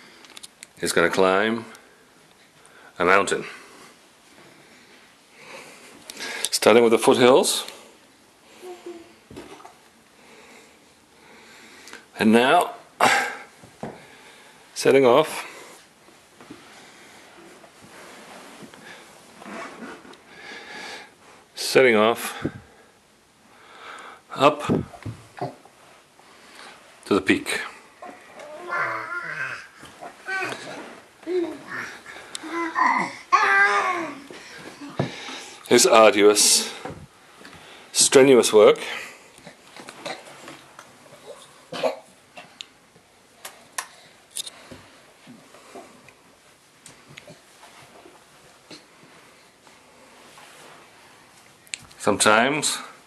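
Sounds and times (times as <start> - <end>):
baby vocal sounds: 8.6 - 9.6, 28.0 - 35.1
baby coughing: 41.7 - 42.1.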